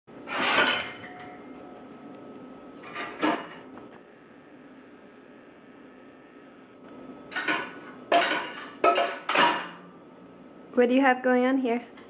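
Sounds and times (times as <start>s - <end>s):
dishes and utensils clattering: 0.3s - 1.6s, 2.8s - 3.7s, 7.3s - 9.8s.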